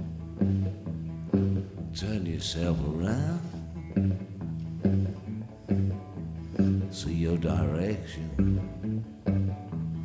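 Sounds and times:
guitar chords ringing: 0:00.0 - 0:10.0
live blues band playing: 0:00.0 - 0:10.0.

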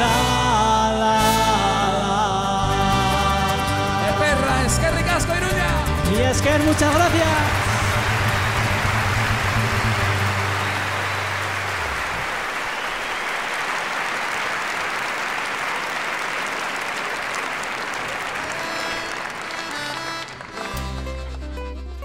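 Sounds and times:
band playing: 0:00.0 - 0:12.6, 0:16.1 - 0:22.0
large audience applauding: 0:06.0 - 0:21.1.

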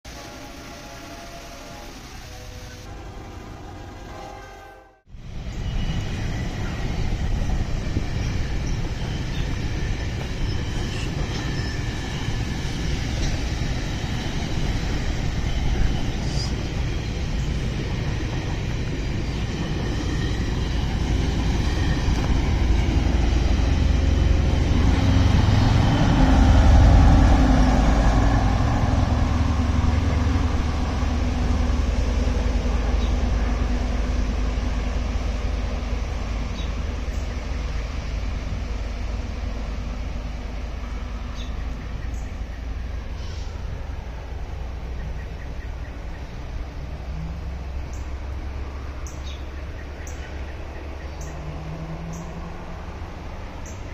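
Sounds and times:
diesel locomotive passing: 0:00.1 - 0:53.9
train rumbling on rails: 0:00.1 - 0:53.9.

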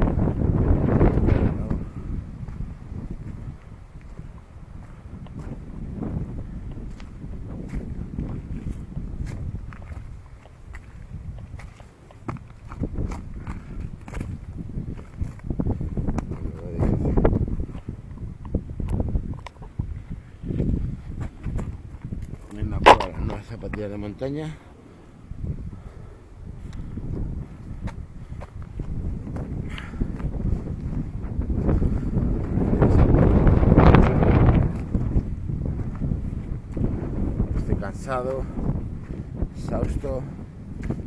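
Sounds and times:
wind buffeting microphone: 0:00.0 - 0:41.0
footsteps on gravel and grass: 0:00.4 - 0:24.0, 0:27.1 - 0:41.0.

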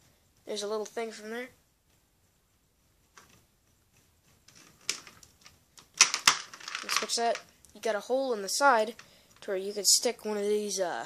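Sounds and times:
plastic parts clicking and tapping: 0:04.5 - 0:07.5.

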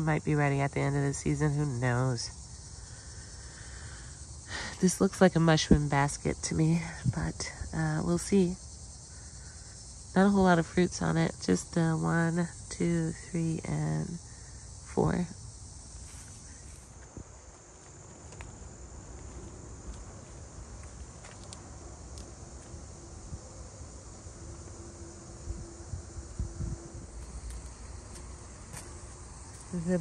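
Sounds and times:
high-pitched insect drone: 0:00.0 - 0:30.0
faint low rumbling: 0:15.0 - 0:30.0.

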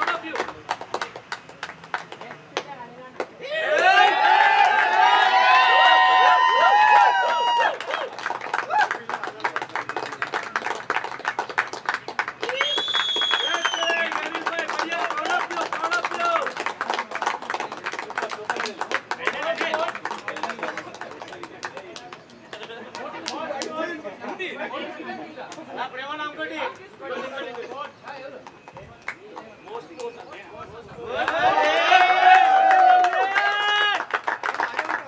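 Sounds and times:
people clapping: 0:00.0 - 0:24.5, 0:25.4 - 0:25.9, 0:26.7 - 0:35.0
overlapping chatter: 0:00.0 - 0:35.0.

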